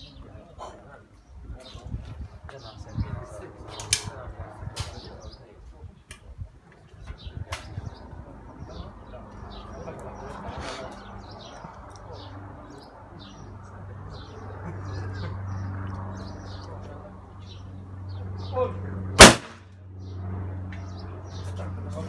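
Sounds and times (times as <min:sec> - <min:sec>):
birds chirping: 0:00.0 - 0:22.0
sharp cracks: 0:19.2 - 0:19.7.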